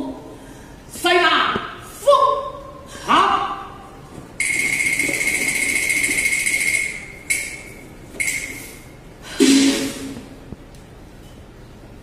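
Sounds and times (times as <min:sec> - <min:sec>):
metal cymbal crash: 0:09.4 - 0:10.2.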